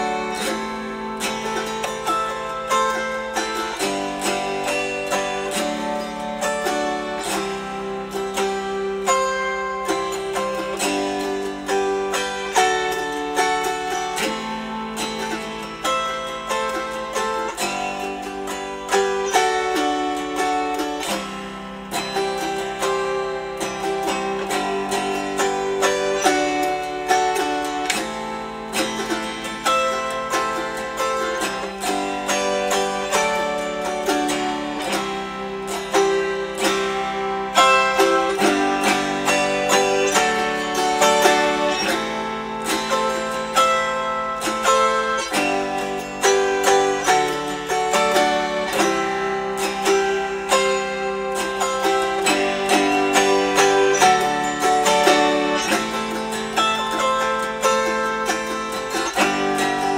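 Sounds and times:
autoharp strummed: 0.0 - 59.9.

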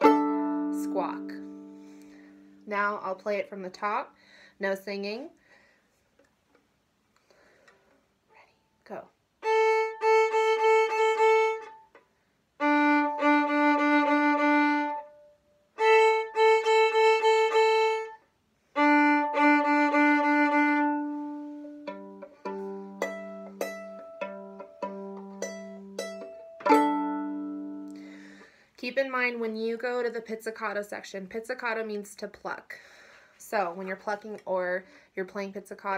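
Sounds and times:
violin strings plucked in sweep: 0.0 - 1.8, 18.8 - 28.0
violin bowed phrases: 0.0 - 2.7, 9.4 - 12.0, 12.6 - 28.5
violin pizzicato notes: 0.0 - 2.7, 9.4 - 12.0, 12.6 - 28.4.

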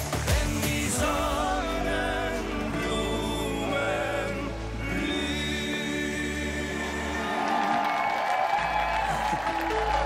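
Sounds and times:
band backing music: 0.0 - 6.8
male vocal trio singing: 0.1 - 7.8
audience applause: 6.5 - 10.0.

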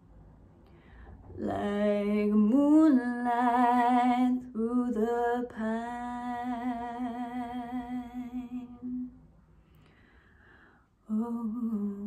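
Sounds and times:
woman singing with vibrato: 1.4 - 9.2, 11.1 - 12.0.

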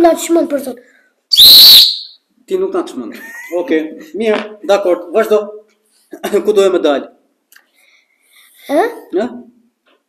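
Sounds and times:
loud piercing whistle: 1.3 - 2.3.

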